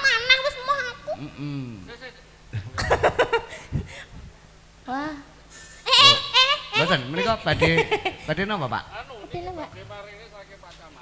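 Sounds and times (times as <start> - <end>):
wordless vocal sound: 1.1 - 1.9.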